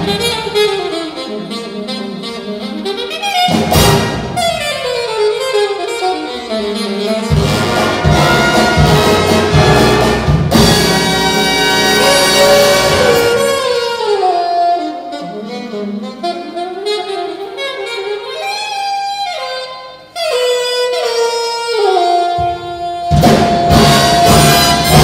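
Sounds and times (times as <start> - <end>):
solo saxophone: 0.0 - 10.2, 10.8 - 25.0
big band drum and ensemble hits: 0.0 - 15.1, 20.2 - 25.0.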